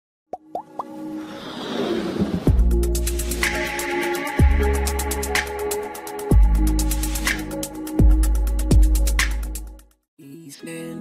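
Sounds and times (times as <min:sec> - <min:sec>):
music: 0:00.4 - 0:11.0
quick rising pops: 0:00.6 - 0:02.6.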